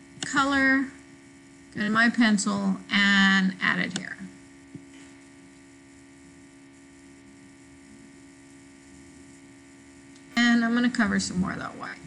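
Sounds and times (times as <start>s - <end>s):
electrical hum: 0.0s - 12.0s.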